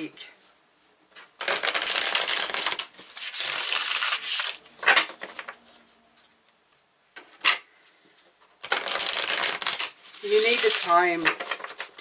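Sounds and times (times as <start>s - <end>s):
cards riffle-shuffled: 1.4s - 6.4s, 8.6s - 12.0s.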